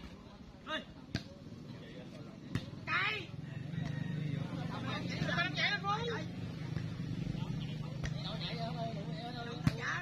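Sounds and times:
voices shouting: 2.7 - 10.0.

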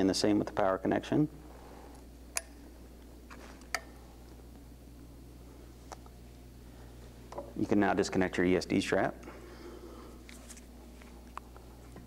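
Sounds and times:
low hum: 0.4 - 12.0.

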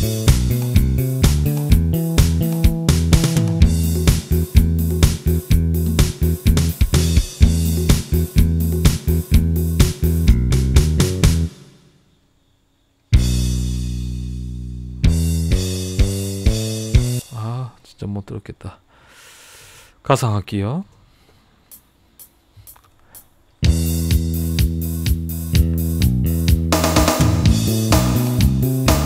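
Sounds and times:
karaoke backing music: 0.0 - 10.4, 23.7 - 29.0.

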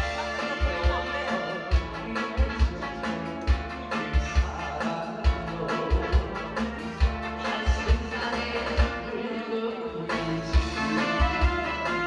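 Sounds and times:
backing track over loudspeakers: 0.0 - 12.0.

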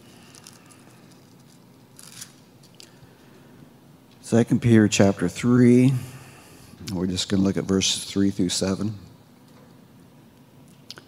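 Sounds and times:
thin pages being turned: 0.2 - 2.8.

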